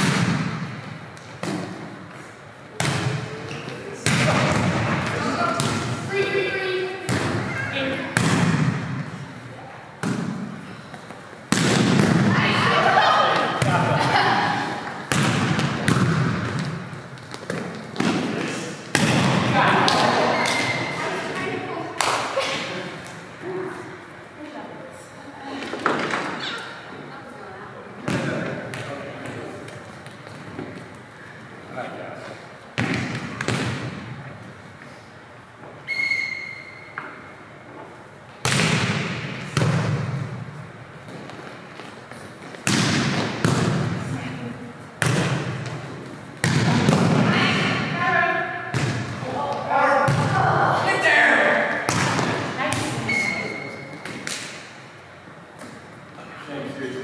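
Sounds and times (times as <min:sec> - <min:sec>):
volleyball hit echoing in a gym: 0:00.0 - 0:23.8, 0:28.0 - 0:31.4, 0:32.6 - 0:34.5, 0:35.6 - 0:55.9
referee's whistle: 0:35.9 - 0:37.0, 0:53.1 - 0:53.8.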